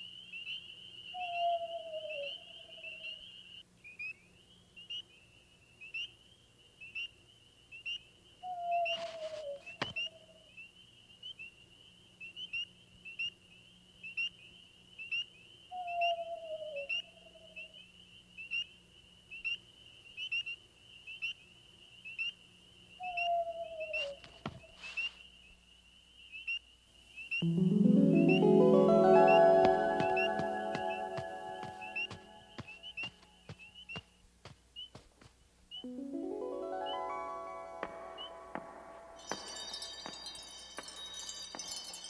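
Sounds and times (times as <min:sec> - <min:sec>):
music with rising notes: 0:27.4 - 0:32.6, 0:35.8 - 0:41.3.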